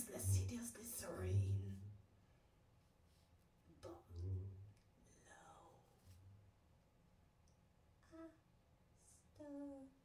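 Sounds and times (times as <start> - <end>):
low voice into microphone: 0.0 - 1.9, 3.8 - 5.8.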